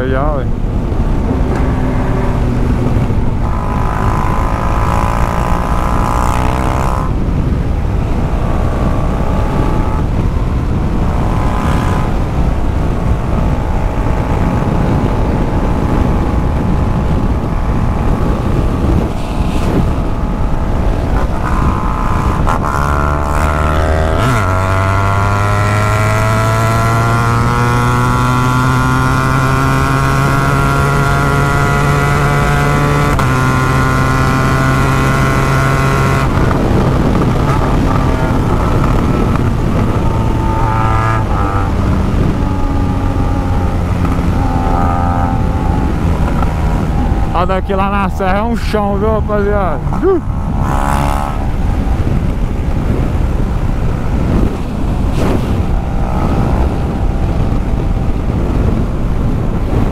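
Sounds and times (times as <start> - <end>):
motorcycle engine accelerating: 0.0 - 59.9
wind rushing over microphone: 0.0 - 59.9.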